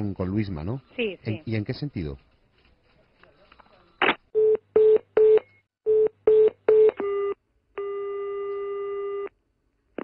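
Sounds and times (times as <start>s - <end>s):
steady telephone tone: 4.8s - 9.3s.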